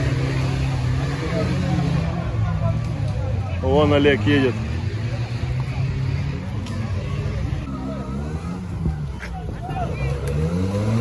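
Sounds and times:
off-road vehicle engine revving: 0.0s - 11.0s.

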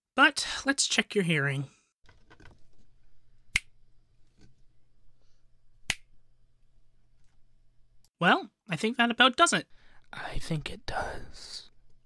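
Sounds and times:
finger snaps: 3.5s - 3.7s, 5.9s - 6.1s.

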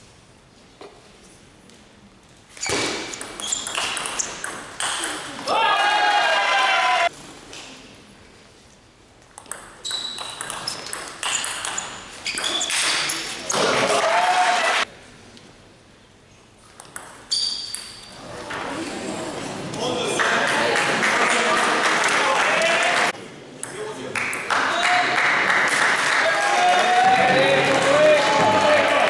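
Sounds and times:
table tennis ball clicking: 9.4s - 12.8s.

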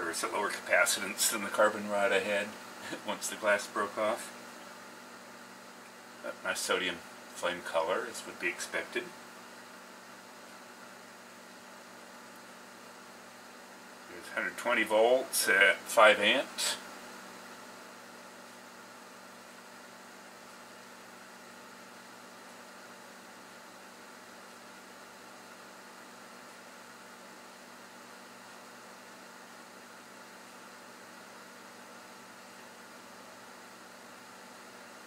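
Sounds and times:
faint even hum: 0.0s - 35.0s.

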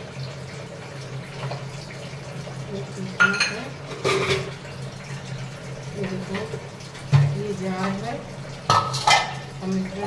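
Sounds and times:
steel utensils scraping and clattering: 3.9s - 4.5s, 8.7s - 9.5s.

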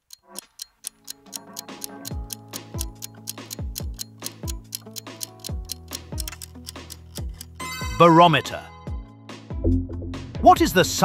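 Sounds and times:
clock-like ticking: 0.0s - 7.9s
countdown music with bass notes: 1.0s - 11.0s.

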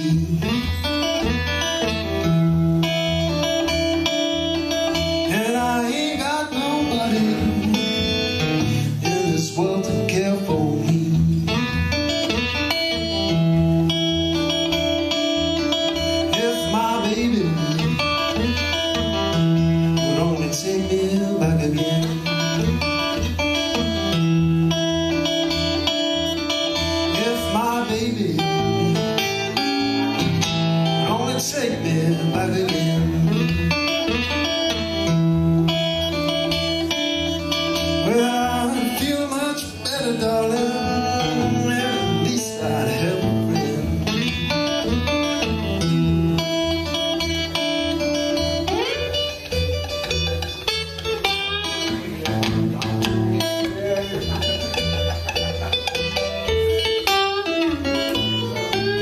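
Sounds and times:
acoustic guitar blues: 0.0s - 59.0s.

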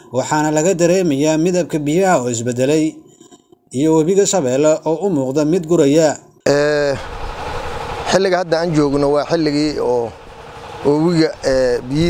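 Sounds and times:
steady rushing noise: 6.6s - 12.0s.

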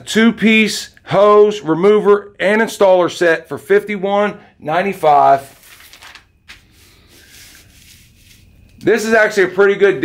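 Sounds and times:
paper crinkle: 5.3s - 8.8s
paper page turning: 5.3s - 8.9s.

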